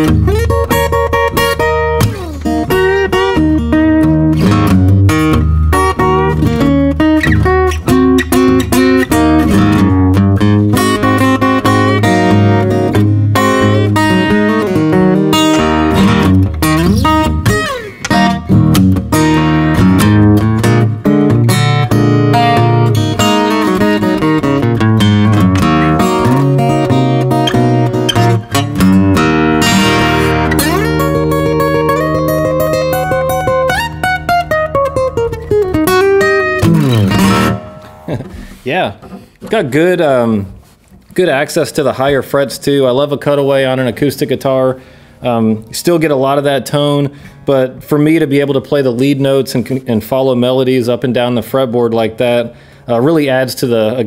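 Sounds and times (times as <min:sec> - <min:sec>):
fingerpicked acoustic guitar: 0:00.0 - 0:41.2.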